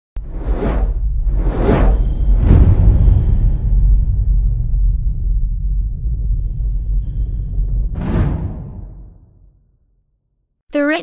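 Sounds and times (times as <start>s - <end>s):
deep rumble: 0.2s - 9.8s.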